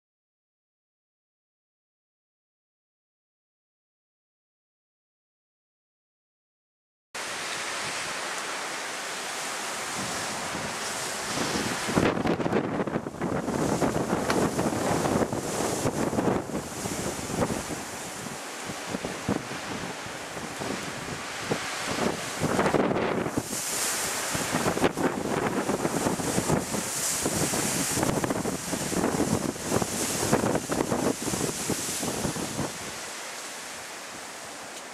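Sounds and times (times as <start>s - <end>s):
storm-force wind through trees: 7.2s - 34.9s
leaves thrashing: 7.6s - 34.9s
wind buffeting microphone: 9.9s - 33.0s.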